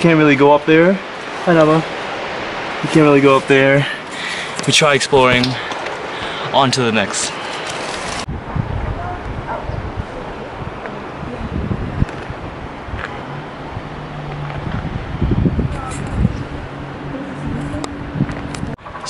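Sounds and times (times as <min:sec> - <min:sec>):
wind buffeting microphone: 0:07.9 - 0:19.0.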